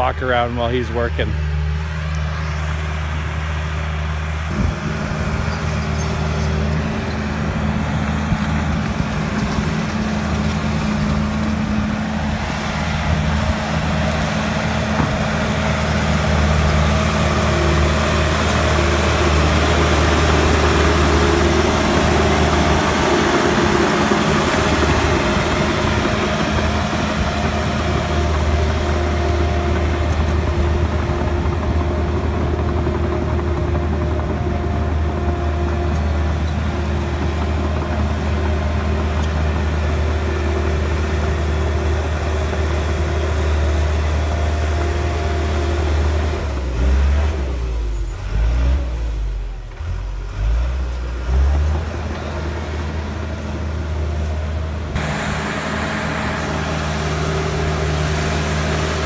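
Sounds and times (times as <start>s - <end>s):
bulldozer diesel engine running: 0.0s - 59.0s.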